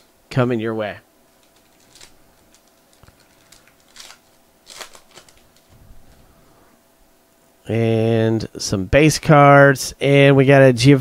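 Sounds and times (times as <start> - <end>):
cards sliding out of pack: 1.4 - 6.2
foil wrapper crinkling: 1.4 - 6.2.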